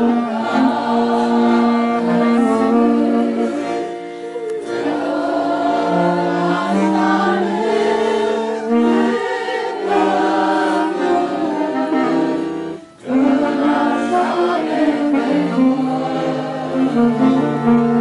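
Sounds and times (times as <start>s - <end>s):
voices singing a hymn in harmony: 0.0s - 18.0s.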